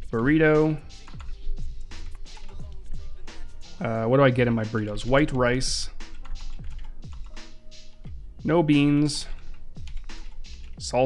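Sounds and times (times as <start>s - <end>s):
quiet background music with beat: 0.0s - 11.0s
computer keyboard typing: 1.0s - 3.0s, 5.9s - 7.6s, 9.1s - 10.8s.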